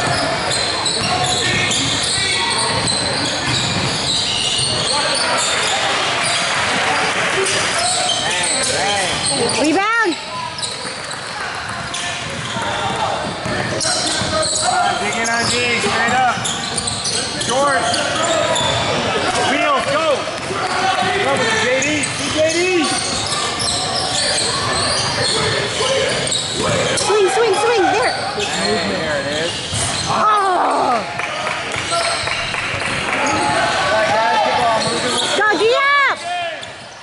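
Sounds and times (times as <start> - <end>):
sneakers squeaking on court: 0.0 - 30.8, 31.7 - 35.9
voices in large hall: 0.0 - 37.0.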